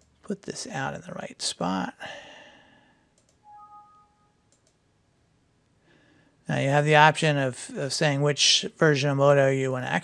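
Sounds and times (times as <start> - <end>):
computer mouse clicks: 3.2 - 3.4, 4.5 - 4.8
two-note tone: 3.5 - 4.4.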